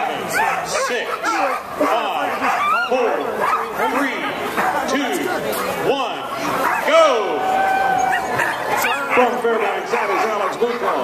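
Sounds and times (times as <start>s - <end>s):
sled dogs barking and yelping: 0.0s - 5.3s, 6.3s - 11.0s
crowd talking: 0.0s - 11.0s.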